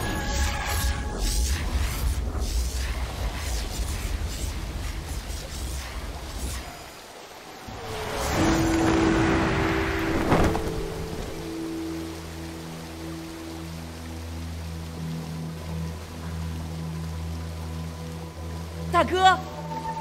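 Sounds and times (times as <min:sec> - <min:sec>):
low droning background music: 0:00.0 - 0:20.0.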